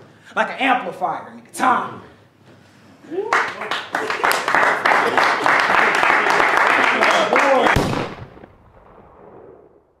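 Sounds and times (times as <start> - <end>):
reverberating boom hit: 7.8 - 9.8.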